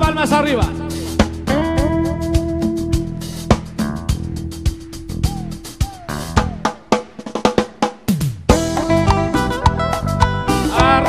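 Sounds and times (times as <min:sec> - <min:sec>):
band drum fill: 0:00.0 - 0:11.0.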